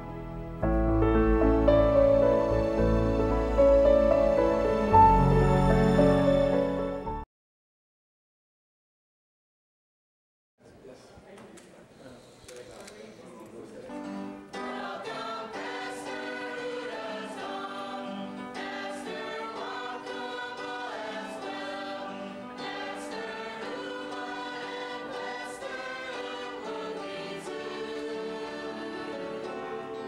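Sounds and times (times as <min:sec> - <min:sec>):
mixed choir singing: 0:01.9 - 0:06.8, 0:14.4 - 0:30.0.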